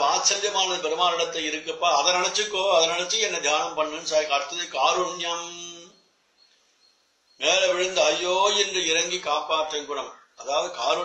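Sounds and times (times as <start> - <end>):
man speaking: 0.0 - 5.9, 7.4 - 11.0.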